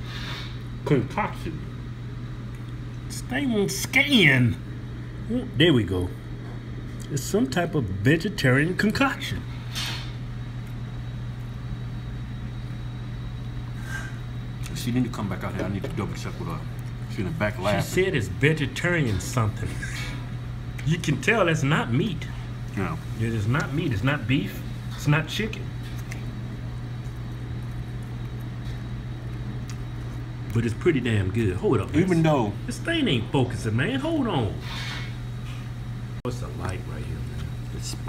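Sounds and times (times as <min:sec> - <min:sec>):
low room tone hum: 0:00.0 - 0:38.0.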